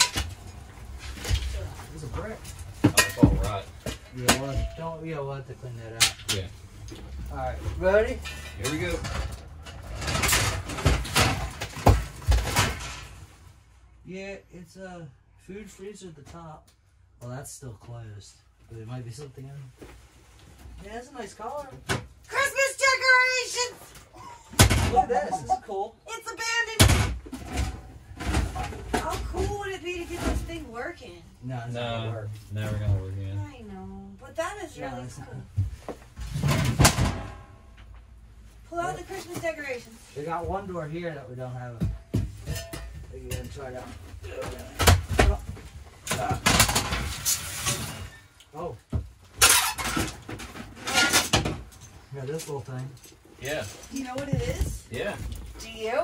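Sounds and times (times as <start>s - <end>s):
scraping and rattling: 7.3s - 13.5s, 38.7s - 48.4s, 49.2s - 56.0s.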